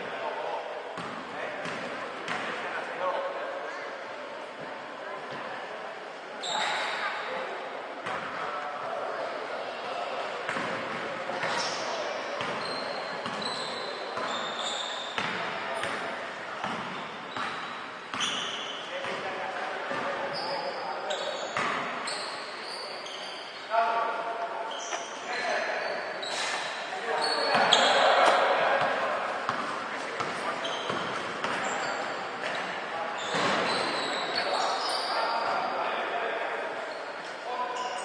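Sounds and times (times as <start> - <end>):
sneaker squeaks: 6.4 - 7.3, 10.5 - 23.7, 24.6 - 35.8, 36.8 - 38.0
basketball bouncing on court: 13.2 - 13.4, 15.2 - 16.0, 16.6 - 18.4, 28.8 - 31.7.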